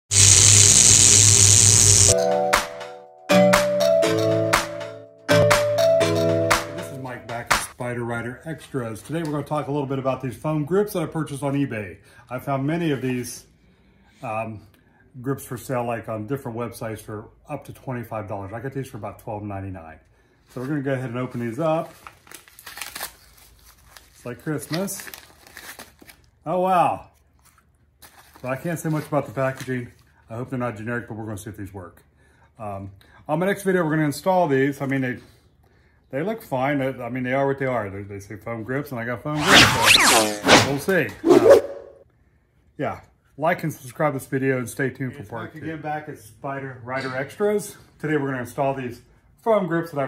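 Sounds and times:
loud static hiss: 0.1s - 2.2s
steady electric buzz: 0.1s - 2.2s
padded envelope crinkling: 21.6s - 26.3s, 27.4s - 28.5s.

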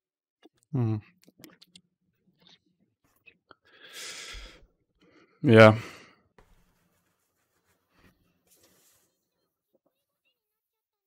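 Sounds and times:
faint mouth clicks: 1.2s - 1.8s.

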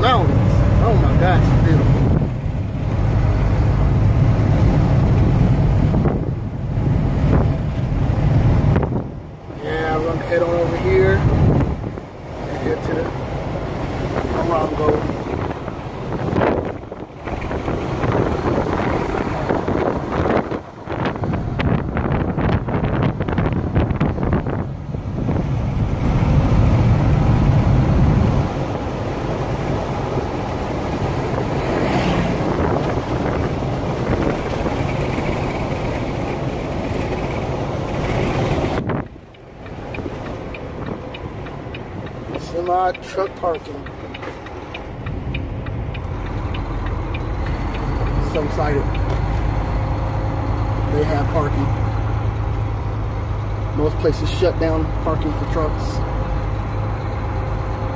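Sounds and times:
wind buffeting microphone: 0.0s - 54.2s
truck engine and road noise: 0.0s - 57.9s.

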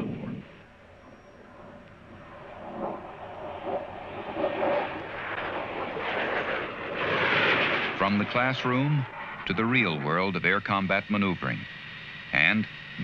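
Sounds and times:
jet aircraft engine roar: 0.0s - 13.0s.

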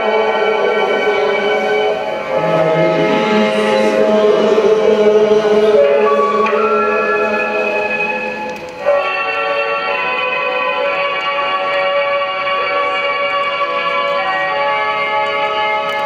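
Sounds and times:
men chanting in unison: 2.3s - 8.0s.

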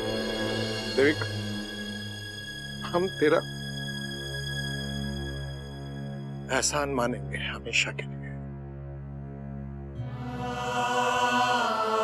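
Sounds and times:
chanted vocal: 10.0s - 12.0s.

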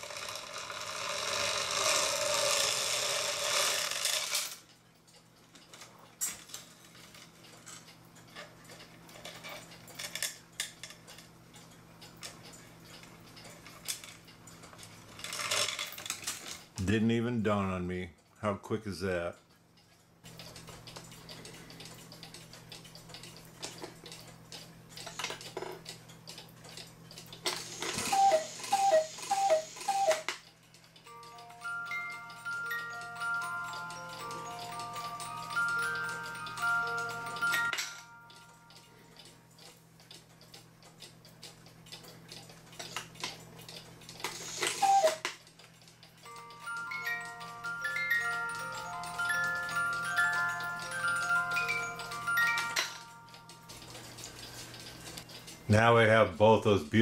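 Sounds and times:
cuckoo clock call: 0.0s - 4.5s, 27.7s - 39.4s, 44.4s - 45.4s, 46.2s - 55.0s
clock ticking: 19.0s - 57.0s
plucked music box tune: 28.0s - 30.3s, 31.0s - 39.3s, 44.8s - 45.3s, 46.1s - 54.8s.

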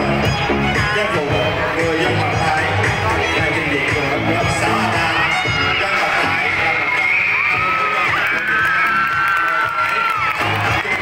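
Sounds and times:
music playing: 0.0s - 11.0s
children cheering and shouting: 3.4s - 11.0s.

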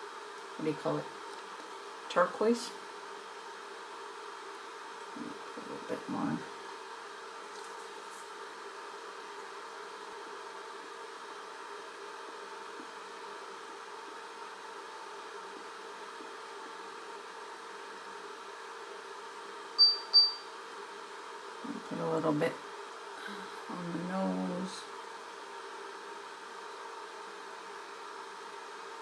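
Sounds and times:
background hum and hiss: 0.0s - 29.0s
short high electronic beeps: 19.8s - 20.4s.

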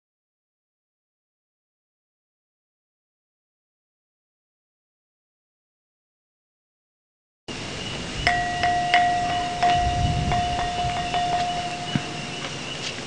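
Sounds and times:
metal chimes ringing: 8.2s - 12.5s.

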